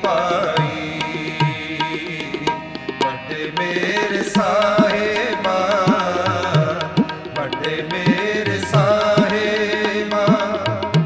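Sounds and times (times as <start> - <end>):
harmonium reedy notes: 0.0 - 11.0
tabla strokes: 0.1 - 11.0.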